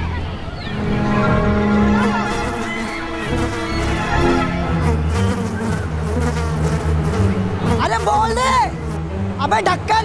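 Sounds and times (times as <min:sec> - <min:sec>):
low pulsing buzzing drone: 0:00.7 - 0:09.5.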